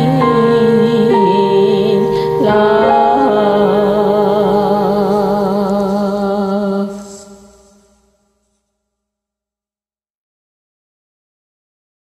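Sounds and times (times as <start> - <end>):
piano chord ringing: 0.0 - 6.6.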